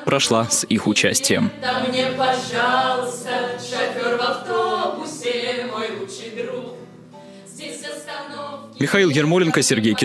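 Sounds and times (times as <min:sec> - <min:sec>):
group singing together: 0:00.0 - 0:10.0.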